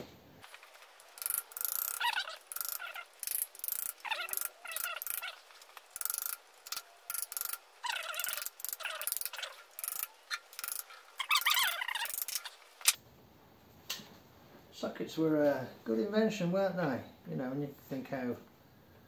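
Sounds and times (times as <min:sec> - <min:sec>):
socket ratchet clicking: 0:00.6 - 0:13.0.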